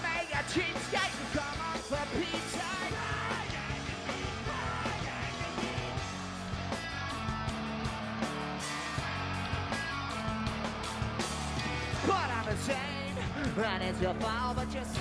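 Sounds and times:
person singing: 0.0s - 6.0s
punk rock band playing live: 0.0s - 15.0s.

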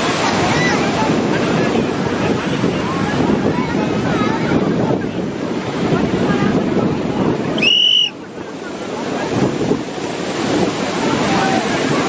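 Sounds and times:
rushing river water: 0.0s - 12.0s
wind buffeting microphone: 0.0s - 12.0s.

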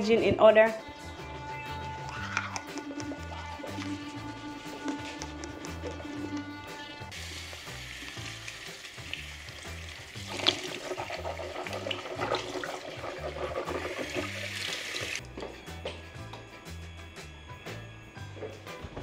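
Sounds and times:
background music with bass: 0.0s - 19.0s
tap running into basin: 7.5s - 15.2s.

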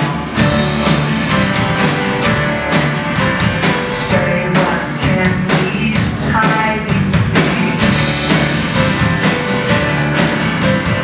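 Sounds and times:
drum beat: 0.0s - 11.0s
guitars strummed: 0.0s - 11.0s
live rock band: 0.0s - 11.0s.

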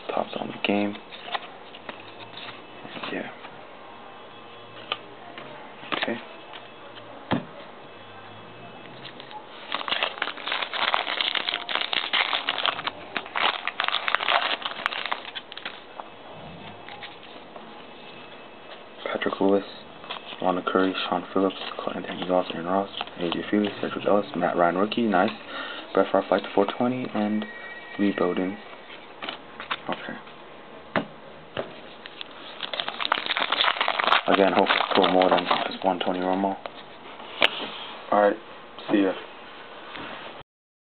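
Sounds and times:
trading cards clicking and rustling: 9.0s - 15.8s, 32.0s - 36.8s
foil wrapper crinkling and tearing: 9.2s - 15.8s, 32.0s - 36.5s.

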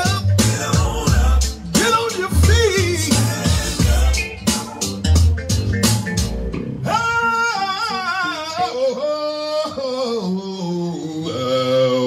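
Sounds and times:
live gospel band playing: 0.0s - 9.0s.

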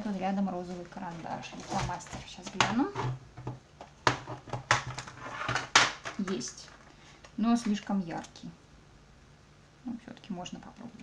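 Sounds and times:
hands rummaging through supplies: 0.2s - 3.2s.

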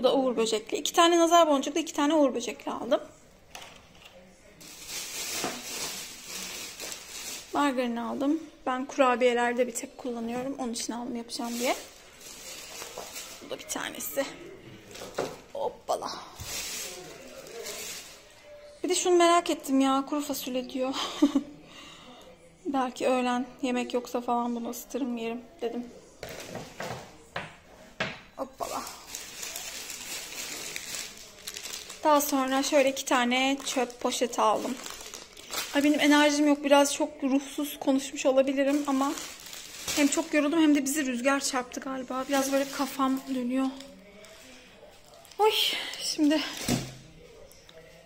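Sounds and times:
plastic bags rustling: 4.5s - 8.6s, 9.4s - 18.6s, 28.4s - 47.6s
packaged groceries knocking: 4.6s - 7.5s, 11.4s - 13.4s, 26.2s - 32.6s, 38.6s - 40.4s, 46.5s - 47.1s.

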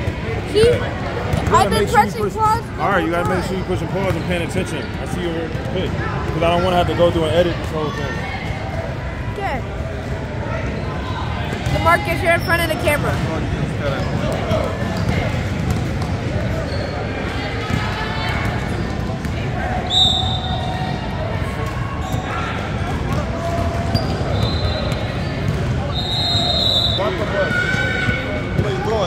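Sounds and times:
referee's whistle: 19.8s - 20.9s, 24.0s - 27.9s.

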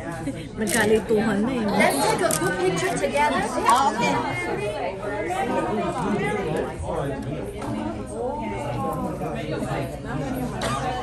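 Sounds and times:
overlapping conversation: 0.0s - 11.0s.

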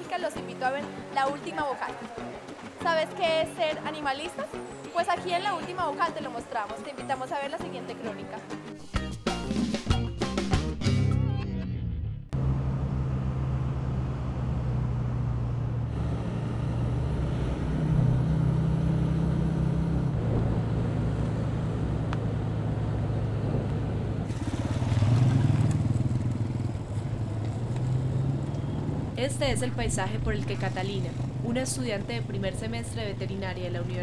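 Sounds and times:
motorcycle engine accelerating: 11.7s - 34.0s.

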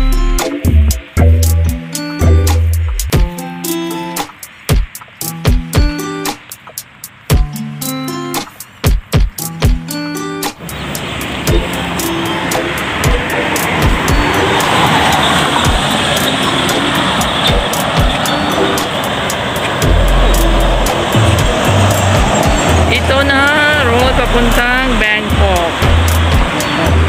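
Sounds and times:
highway traffic noise: 0.0s - 27.0s
music with regular beat: 0.0s - 27.0s
person speaking: 19.8s - 27.0s.

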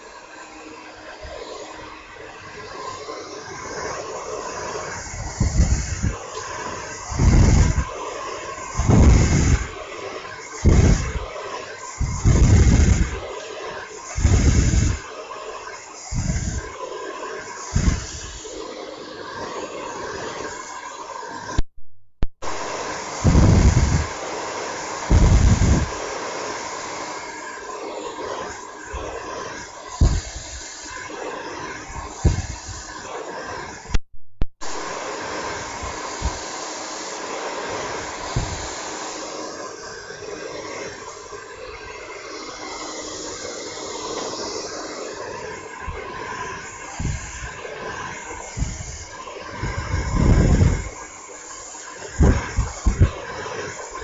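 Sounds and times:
hair dryer blowing: 0.0s - 21.7s, 22.4s - 54.0s.

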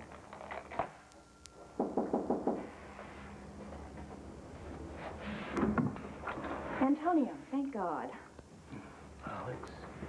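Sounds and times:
knocking on wooden door: 1.8s - 2.7s.

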